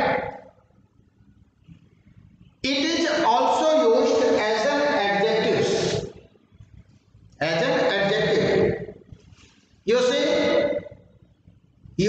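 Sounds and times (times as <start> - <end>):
man speaking: 0.0 - 0.3, 2.6 - 6.1, 7.4 - 8.9, 9.9 - 10.9.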